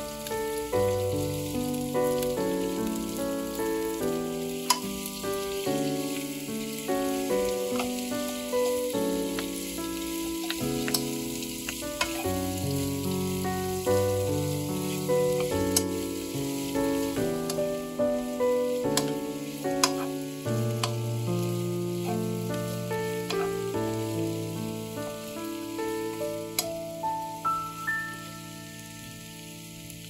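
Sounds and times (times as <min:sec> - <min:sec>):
instrumental background music: 0:00.0 - 0:30.0
vegetables sizzling in a pan: 0:00.0 - 0:30.0
wooden spatula clicking: 0:04.6 - 0:04.8, 0:10.4 - 0:12.2, 0:19.0 - 0:19.2, 0:19.8 - 0:20.1, 0:20.8 - 0:21.0.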